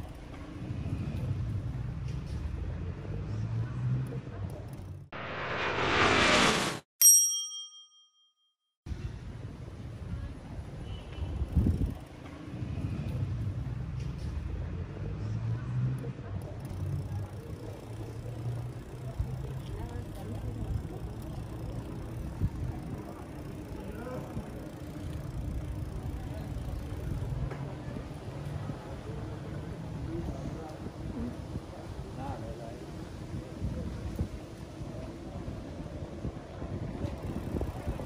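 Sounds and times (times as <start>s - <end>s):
steady low rumble: 5.2s - 6.8s
passers-by talking: 14.7s - 38.0s.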